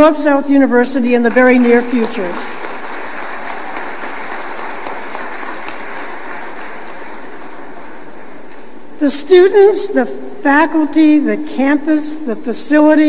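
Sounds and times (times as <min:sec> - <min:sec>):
large audience applauding: 0:01.6 - 0:08.4.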